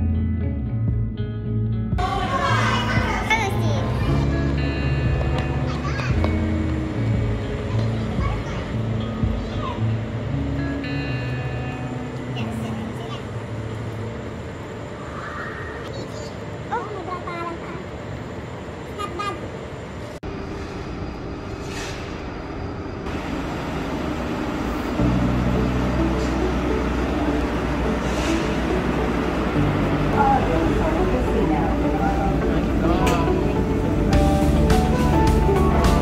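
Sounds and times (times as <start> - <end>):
tram humming: 2.0 - 36.0.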